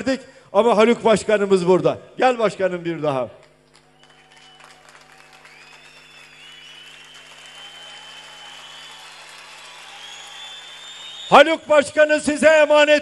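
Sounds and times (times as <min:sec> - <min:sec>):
steady low hum: 0:00.0 - 0:12.5
crowd applauding and cheering: 0:03.4 - 0:11.5
long high whistles: 0:03.8 - 0:11.7.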